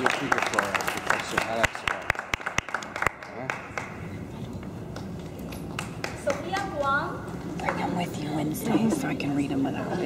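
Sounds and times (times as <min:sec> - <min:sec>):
audience applause: 0:00.0 - 0:04.0.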